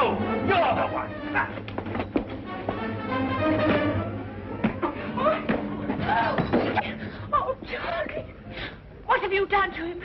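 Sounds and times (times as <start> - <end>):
dramatic film score: 0.0 - 7.6.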